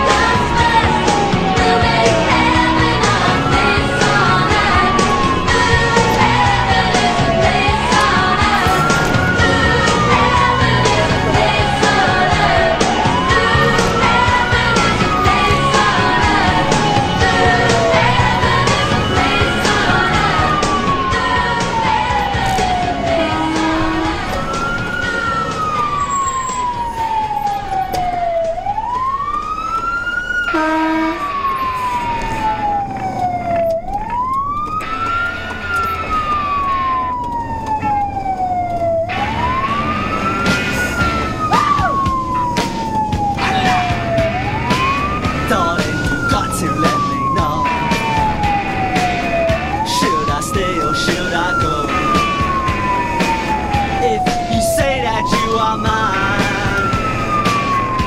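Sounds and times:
fire engine siren wailing: 0:00.0 - 0:58.0
road noise: 0:00.0 - 0:58.0.

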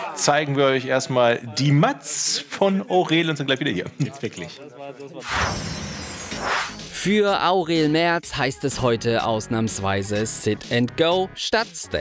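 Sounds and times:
glass shattering effect: 0:05.2 - 0:07.0
music: 0:06.0 - 0:12.0.

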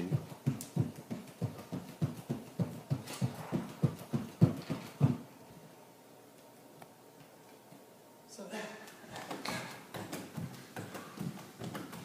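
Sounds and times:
bare feet hopping on hardwood: 0:00.0 - 0:05.3, 0:09.1 - 0:12.0.

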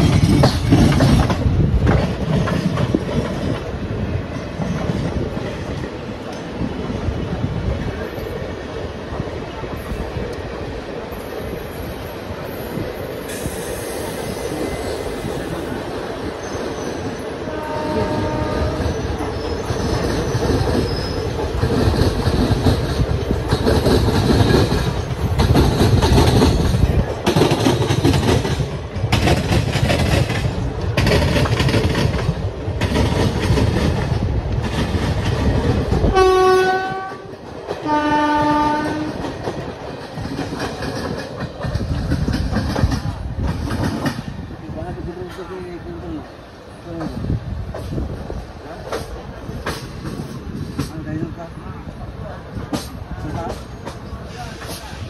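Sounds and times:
wheels clattering on rails: 0:00.0 - 0:07.0, 0:11.2 - 0:45.7, 0:46.7 - 0:51.4, 0:52.4 - 0:55.0
train rumbling: 0:00.0 - 0:55.0
train horn blasts: 0:17.4 - 0:19.0, 0:36.1 - 0:39.2.

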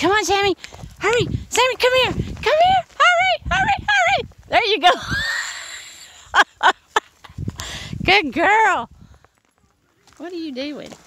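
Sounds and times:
person laughing breathily: 0:04.9 - 0:08.0
person exhaling breathily: 0:07.6 - 0:08.0.

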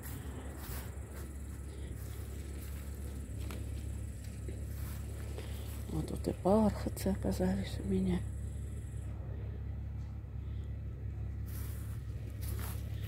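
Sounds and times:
footsteps rustling through grass: 0:00.0 - 0:06.4, 0:11.4 - 0:13.0.

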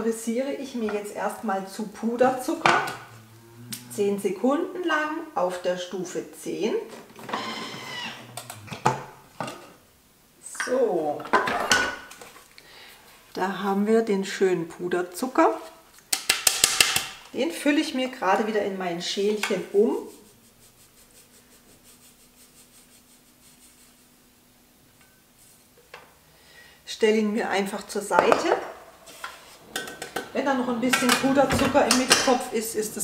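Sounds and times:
low steady hum: 0:00.0 - 0:10.5.

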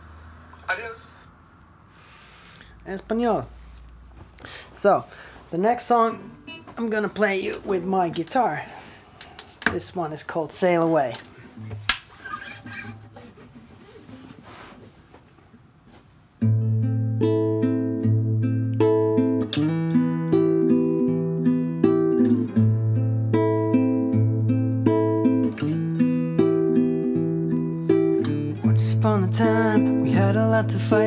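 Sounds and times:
faint room noise: 0:00.0 - 0:31.0
classical guitar fingerpicking: 0:06.2 - 0:06.8, 0:16.4 - 0:31.0.

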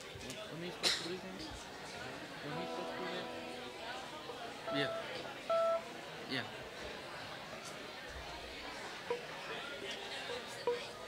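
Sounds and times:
people chatting: 0:00.0 - 0:11.0
short electronic beep: 0:04.7 - 0:05.8.

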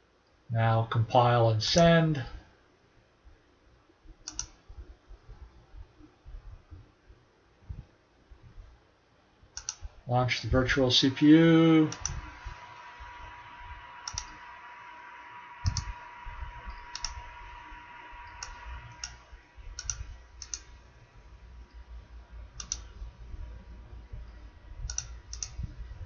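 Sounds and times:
faint steady hum: 0:00.0 - 0:26.0
computer mouse clicks: 0:04.2 - 0:04.6, 0:09.6 - 0:09.9, 0:14.0 - 0:14.3, 0:16.9 - 0:17.2, 0:19.8 - 0:20.7, 0:22.6 - 0:22.9, 0:24.8 - 0:25.6
thin steady tone: 0:09.6 - 0:26.0.

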